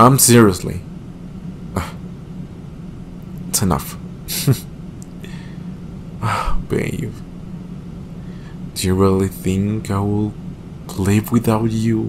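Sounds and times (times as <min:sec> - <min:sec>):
steady low hum: 0:00.0 - 0:12.0
man exhaling breathily: 0:05.2 - 0:06.6.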